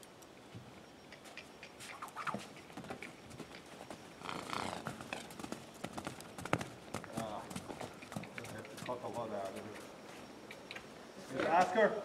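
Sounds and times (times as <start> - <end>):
horse hooves trotting on sand: 0.0 - 11.0.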